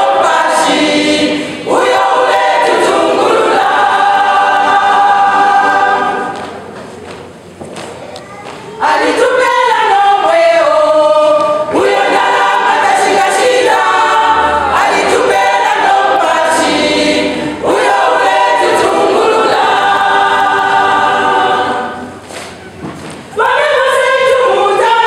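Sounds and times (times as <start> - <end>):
women's choir singing gospel: 0.0 - 6.8, 8.8 - 25.0.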